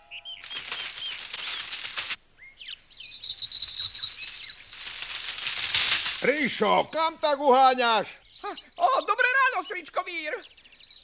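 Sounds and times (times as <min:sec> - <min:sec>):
bird chirps: 0:00.0 - 0:01.8, 0:02.4 - 0:04.8, 0:07.8 - 0:11.0
cartoon wings flapping: 0:00.4 - 0:02.2, 0:03.6 - 0:06.4.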